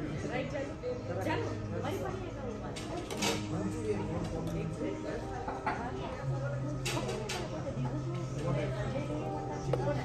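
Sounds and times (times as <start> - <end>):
diners conversation: 0.0 - 10.0.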